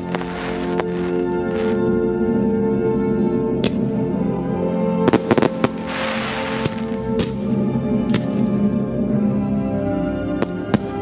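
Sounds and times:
crackle of firework stars: 0:00.0 - 0:01.8, 0:05.1 - 0:07.4
firework shells bursting: 0:00.0 - 0:01.8, 0:05.1 - 0:07.4
classical music: 0:00.0 - 0:11.0.

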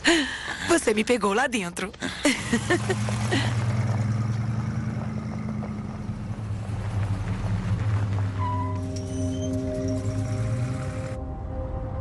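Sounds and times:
car engine running: 0:02.4 - 0:11.2
sustained musical tones: 0:08.4 - 0:12.0.

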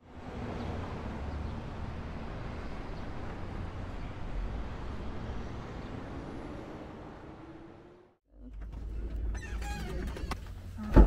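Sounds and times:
distant traffic noise: 0:00.0 - 0:08.2
faint high squeaks: 0:09.2 - 0:10.9.

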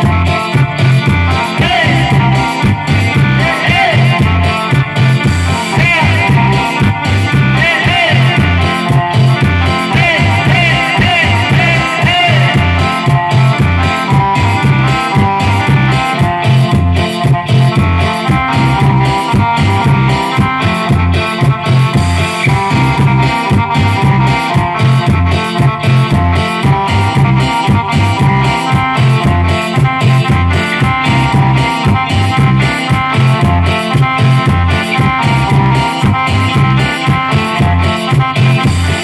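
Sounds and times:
live cumbia band: 0:00.0 - 0:39.0.

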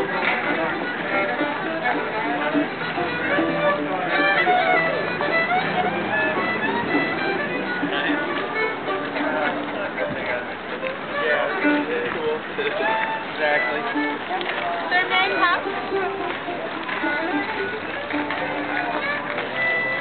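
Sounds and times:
fiddle bowing melody: 0:00.0 - 0:20.0
mandolin accompaniment: 0:00.0 - 0:20.0.

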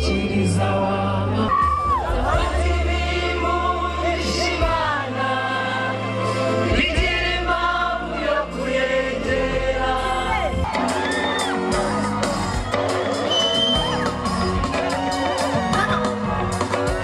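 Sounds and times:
backing singers: 0:00.0 - 0:17.0
band with keyboard and guitars: 0:00.0 - 0:17.0
lead singer: 0:00.0 - 0:17.0.

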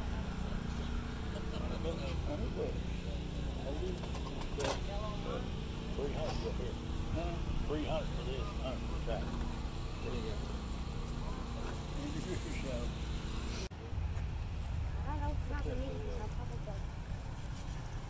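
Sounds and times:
people talking indistinctly: 0:00.4 - 0:13.7, 0:14.8 - 0:17.0
steady low rumble: 0:05.0 - 0:18.0.

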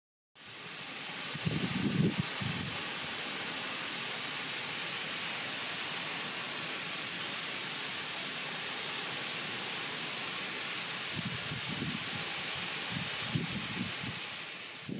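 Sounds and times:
lawn sprinklers spraying water: 0:00.4 - 0:14.9.

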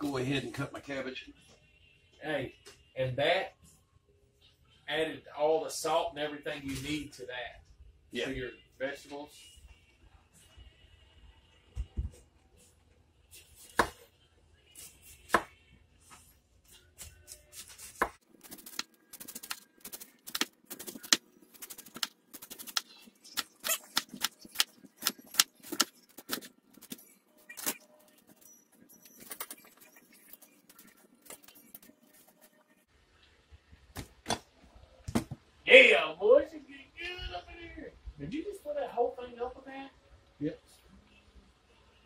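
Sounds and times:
knife chopping on wooden board: 0:13.6 - 0:14.0.

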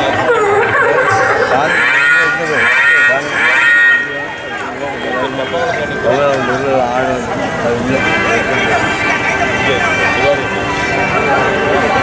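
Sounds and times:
other voices: 0:00.0 - 0:12.0.

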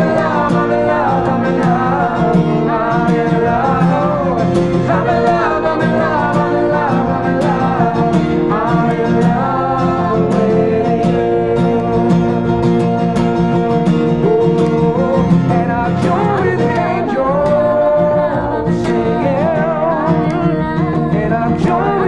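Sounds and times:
acoustic guitar strumming: 0:00.0 - 0:22.0
several voices singing together: 0:00.0 - 0:22.0.

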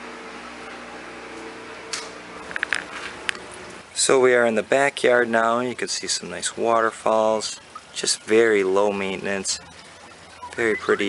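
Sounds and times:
washer and dryer humming: 0:00.0 - 0:04.1.

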